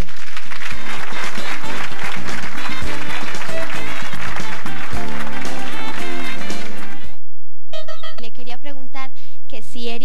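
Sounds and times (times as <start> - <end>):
audience applauding: 0.0 - 7.2
show music: 0.5 - 7.2.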